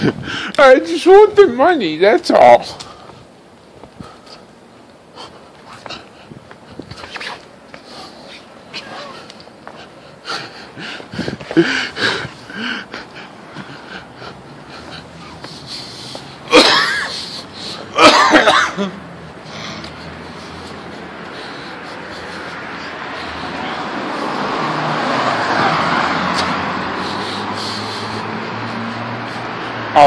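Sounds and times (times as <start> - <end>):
person coughing hard: 16.4 - 19.0.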